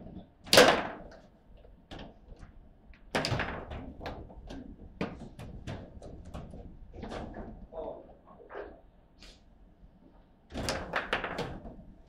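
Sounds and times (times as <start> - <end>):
sharp crack of table football ball: 0.4 - 1.1.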